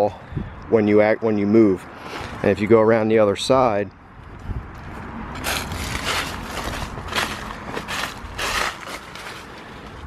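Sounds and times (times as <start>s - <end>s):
footsteps crunching on dry leaves: 4.3s - 10.0s.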